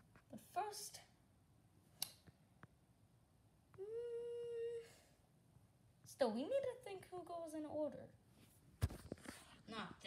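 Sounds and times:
person humming: 3.7 - 5.1.

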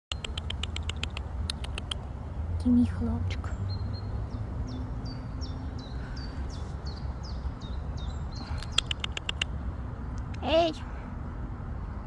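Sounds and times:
sharp ticks: 0.1 - 2.1, 8.6 - 10.4.

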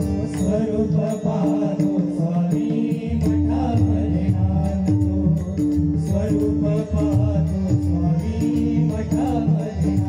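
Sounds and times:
chant-like singing: 0.0 - 10.0
harmonium: 0.0 - 10.0.

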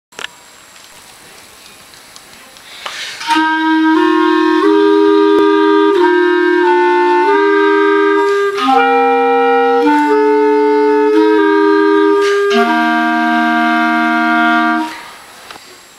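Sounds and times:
clarinets playing slow held notes: 3.2 - 15.2.

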